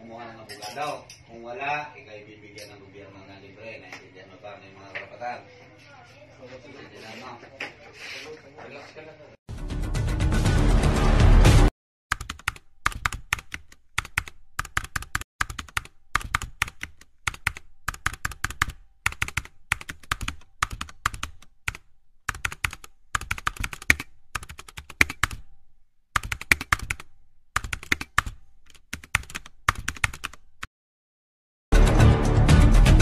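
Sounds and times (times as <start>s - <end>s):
keyboard typing clicks: 12.1s - 25.5s, 26.2s - 30.7s.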